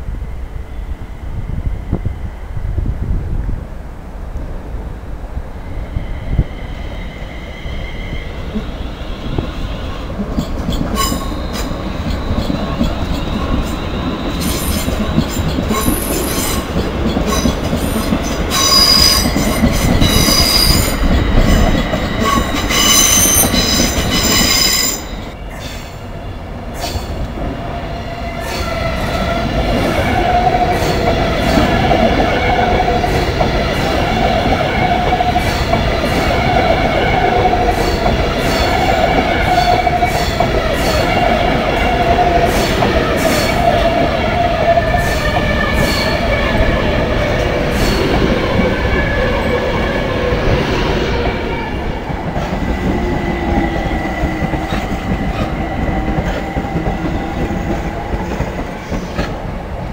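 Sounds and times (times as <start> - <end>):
train rumbling over tracks: 0.0 - 59.9
train whine: 0.0 - 59.9
train wheels squealing: 5.6 - 59.4.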